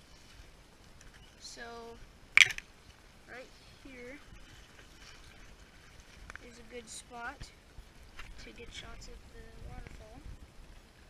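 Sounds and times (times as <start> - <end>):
creek water running: 0.0 - 11.0.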